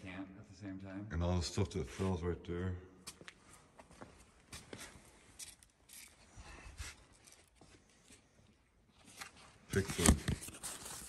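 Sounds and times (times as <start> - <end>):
paper rustling: 9.0 - 11.0.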